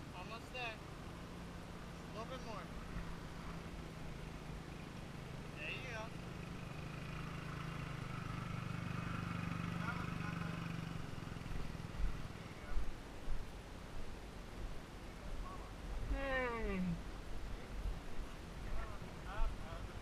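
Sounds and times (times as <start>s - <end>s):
motorbike engine at low revs: 1.0s - 12.9s.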